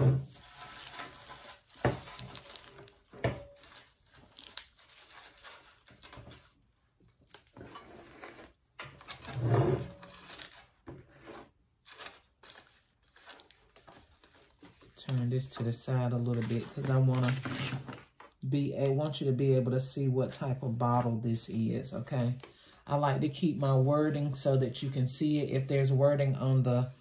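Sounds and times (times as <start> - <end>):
paper shred rustling and crackling: 0.0 - 6.6, 7.2 - 18.2.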